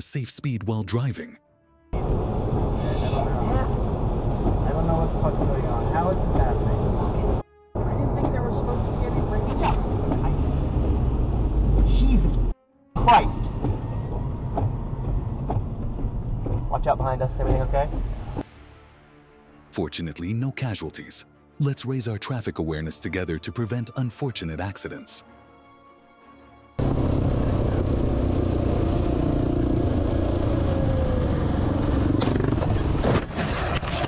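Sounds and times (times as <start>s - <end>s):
engine and road rumble: 2.0s - 18.6s, 26.8s - 34.0s.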